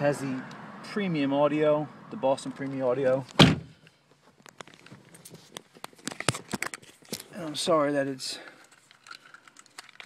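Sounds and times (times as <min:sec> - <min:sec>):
camera handling clicks and rustles: 0:03.8 - 0:07.4, 0:08.5 - 0:10.0.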